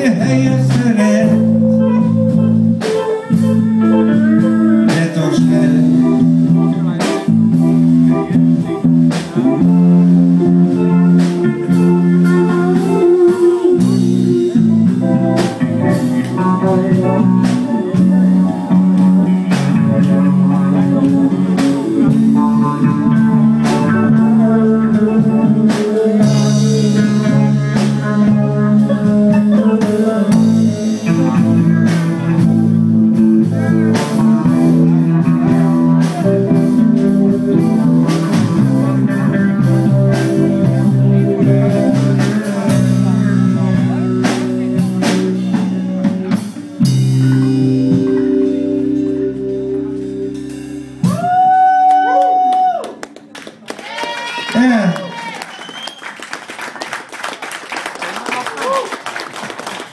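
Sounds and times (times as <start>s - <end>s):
keyboard: 0.0s - 53.7s
drum kit: 0.0s - 54.8s
bass guitar: 0.0s - 59.9s
electric guitar: 0.0s - 59.9s.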